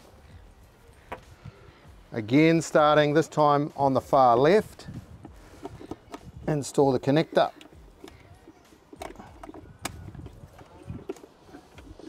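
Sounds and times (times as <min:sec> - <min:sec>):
handling noise: 0:04.4 - 0:12.0
plastic connector clicks: 0:09.0 - 0:11.2.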